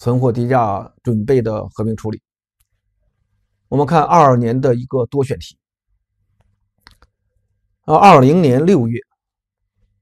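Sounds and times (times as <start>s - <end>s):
man talking: 0.0s - 2.2s, 3.7s - 5.6s, 7.9s - 9.1s.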